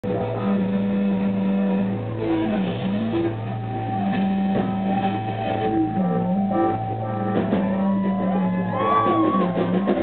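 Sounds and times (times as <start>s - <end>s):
bass guitar droning: 0.0s - 10.0s
electric guitars droning: 0.0s - 10.0s.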